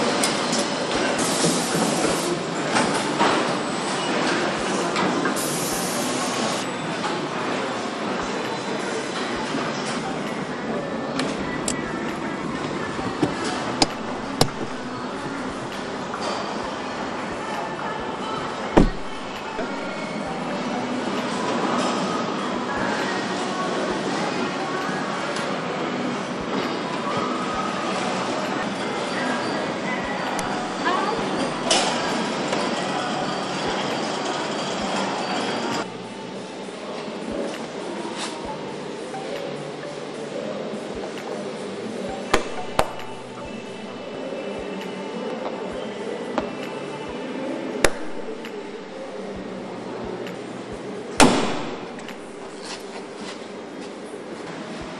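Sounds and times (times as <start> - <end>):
steady mechanical noise: 0.0 - 54.9
factory floor din: 11.2 - 20.6, 42.1 - 44.3, 47.8 - 50.4, 51.1 - 53.6.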